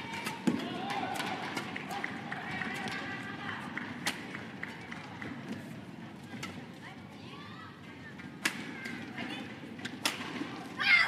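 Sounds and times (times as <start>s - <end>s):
rackets striking shuttlecock: 0.0s - 1.8s, 9.8s - 10.4s.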